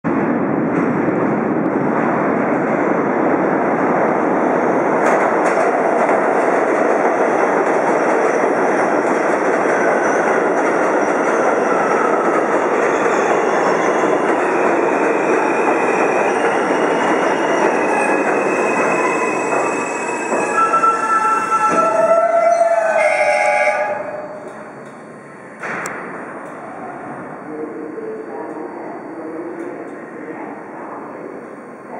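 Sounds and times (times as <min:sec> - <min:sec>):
train wheels rumbling on rail: 0:00.1 - 0:31.0.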